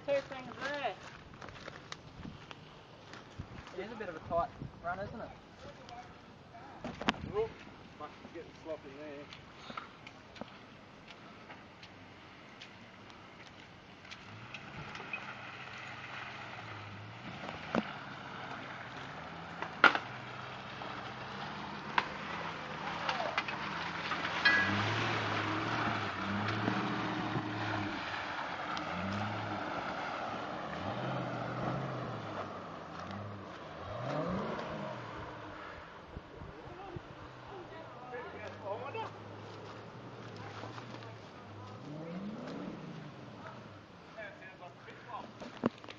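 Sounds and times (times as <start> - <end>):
vehicle engine revving: 14.1 - 35.9, 37.1 - 44.2
sharp crack: 17.4 - 30.5.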